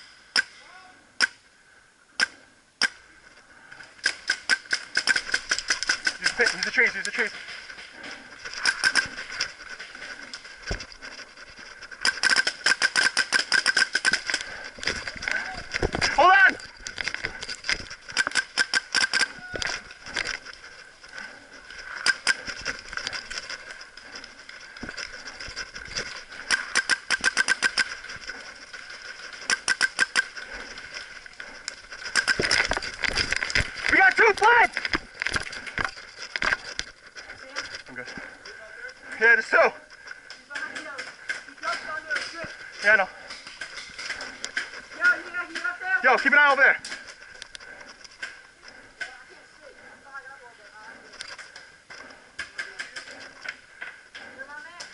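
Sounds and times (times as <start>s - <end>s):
paintball markers firing: 4.0s - 6.7s, 12.0s - 14.6s, 18.1s - 20.4s, 26.4s - 28.4s, 29.4s - 30.4s, 32.1s - 32.8s
people shouting: 33.9s - 34.8s.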